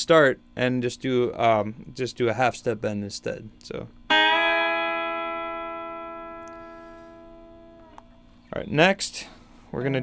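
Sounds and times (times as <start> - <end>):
clean electric guitar bends: 4.1 - 8.2.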